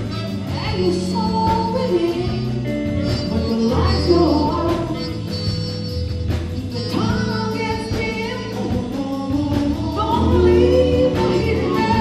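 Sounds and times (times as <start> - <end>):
bass line: 0.0 - 12.0
drums: 0.0 - 12.0
woman singing: 0.0 - 12.0.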